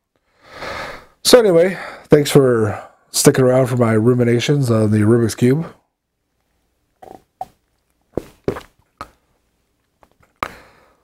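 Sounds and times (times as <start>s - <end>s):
long breathy exhale: 0.3s - 1.2s, 10.4s - 11.0s
man gulping beer: 7.0s - 7.6s.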